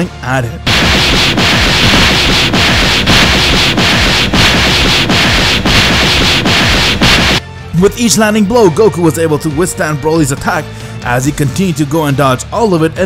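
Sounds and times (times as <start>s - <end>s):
pulsing hiss-like noise: 0.7s - 7.4s.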